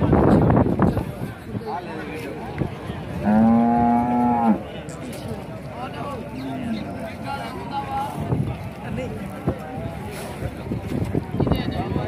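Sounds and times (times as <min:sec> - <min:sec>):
cow mooing: 0:03.2 - 0:04.6.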